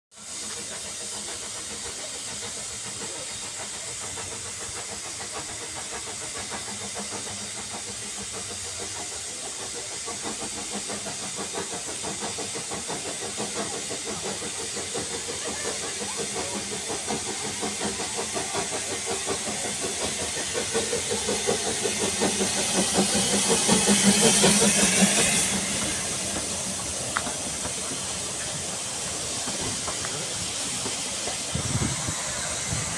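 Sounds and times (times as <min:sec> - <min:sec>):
steam hiss: 0:00.1 - 0:32.9
steam locomotive exhaust chuffs: 0:00.1 - 0:32.9.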